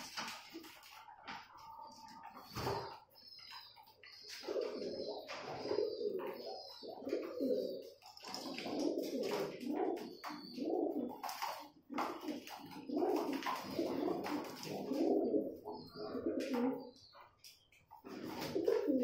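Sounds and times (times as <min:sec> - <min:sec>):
pigeons cooing: 0:00.0 - 0:19.0
beaks pecking on plastic tray: 0:02.6 - 0:16.9.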